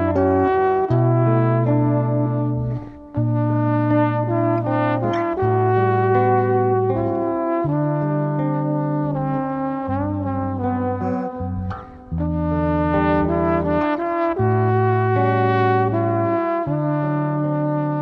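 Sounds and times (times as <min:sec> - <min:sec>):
electric bass: 0:00.0 - 0:18.0
trombone playing a melody: 0:00.0 - 0:18.0.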